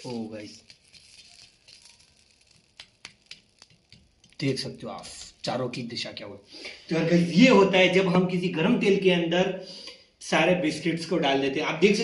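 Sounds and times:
hot oil crackling: 0.0s - 6.4s.

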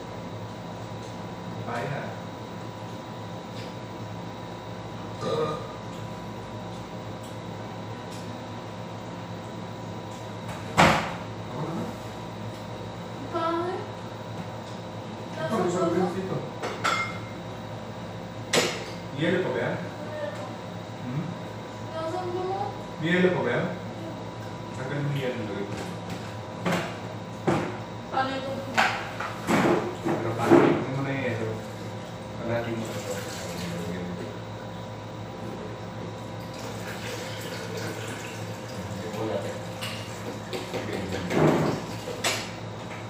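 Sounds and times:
steady background hum: 0.0s - 43.0s.

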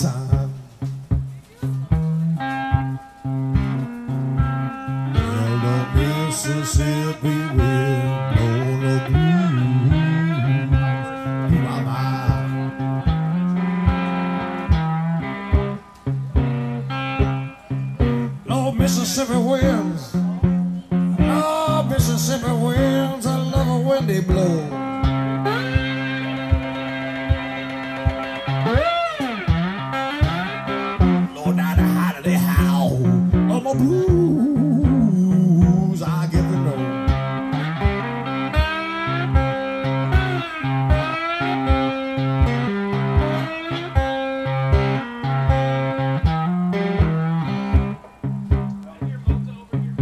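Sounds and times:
slide guitar blues: 0.0s - 50.0s.

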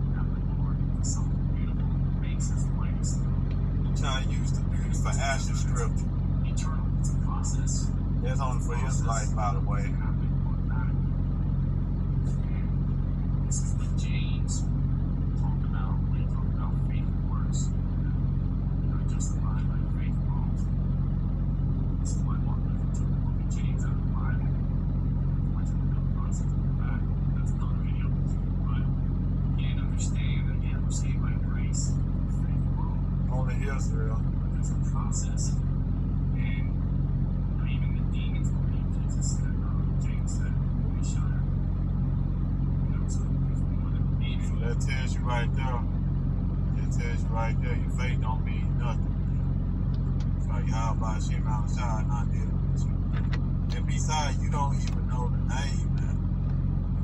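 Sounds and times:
speech from phone speaker: 0.0s - 3.2s, 3.9s - 11.0s, 13.5s - 14.6s, 15.4s - 18.2s, 18.9s - 20.6s, 22.1s - 24.5s, 25.5s - 28.8s, 29.6s - 35.5s, 36.4s - 36.7s, 37.6s - 41.4s, 42.9s - 45.9s, 46.8s - 49.0s, 50.4s - 52.5s, 53.7s - 56.1s
steady low hum: 0.0s - 57.0s.

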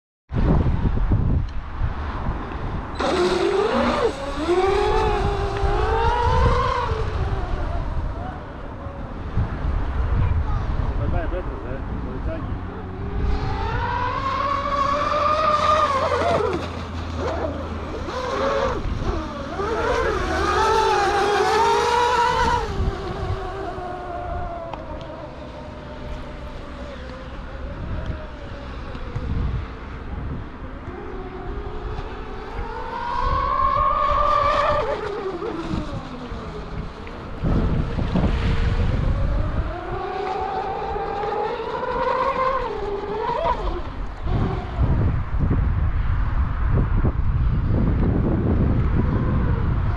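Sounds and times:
model boat motor whining: 3.0s - 10.0s, 12.2s - 45.2s.

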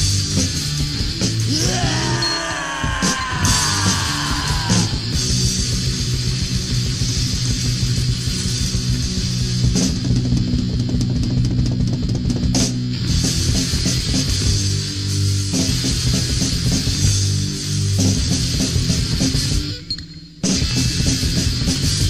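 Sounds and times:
punk rock music: 0.0s - 22.0s.

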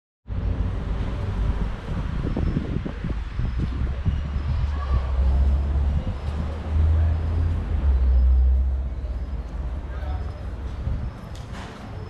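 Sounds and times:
wind buffeting microphone: 0.3s - 8.9s, 10.4s - 12.0s.

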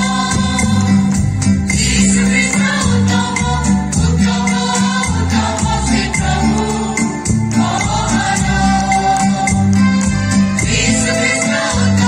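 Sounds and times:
mixed choir singing hymn: 0.0s - 9.8s, 10.6s - 12.0s
amplified instrumental accompaniment: 0.0s - 12.0s.

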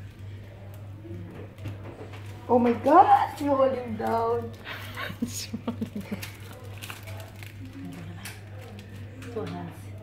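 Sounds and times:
quiet murmur of voice: 0.0s - 2.5s.

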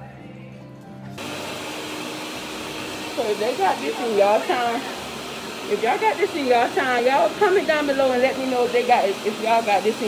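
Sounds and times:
quiet background music: 0.0s - 5.0s
steady rushing fan noise: 1.2s - 10.0s.

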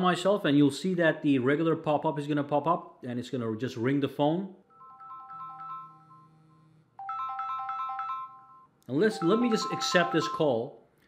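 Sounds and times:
melodic phone ringtone: 4.7s - 10.7s.

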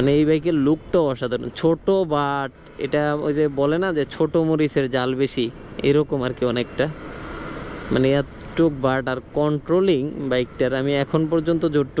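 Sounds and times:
man talking: 0.0s - 7.0s, 7.9s - 12.0s
wind: 0.0s - 12.0s.

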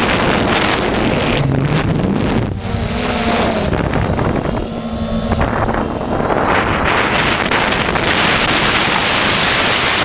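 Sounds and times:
whine of electric motors: 0.0s - 10.0s
wind buffeting microphone: 0.0s - 10.0s.

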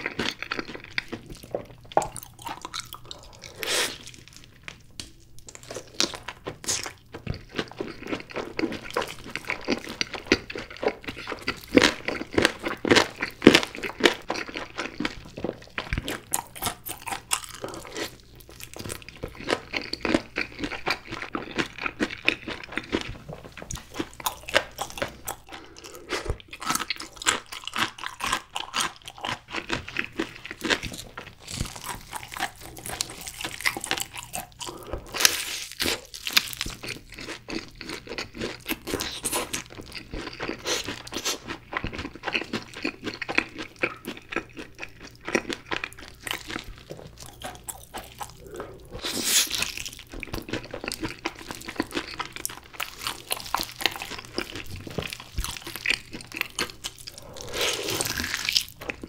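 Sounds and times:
chewing and biting crunchy chicken: 0.0s - 59.0s.

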